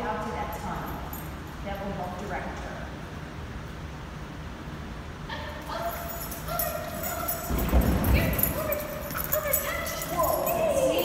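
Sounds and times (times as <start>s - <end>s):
dog barking and yipping: 5.7s - 7.8s.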